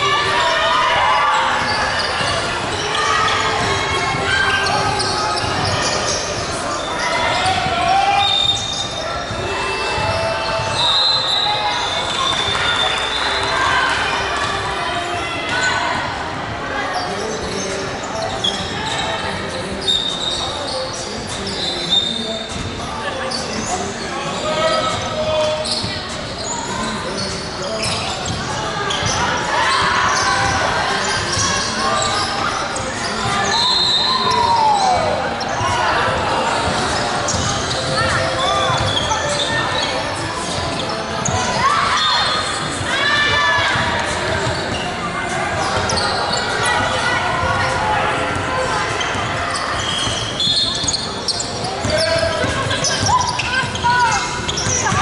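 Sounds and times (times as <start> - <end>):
sneakers squeaking: 0.0 - 55.0
players calling out: 16.9 - 55.0.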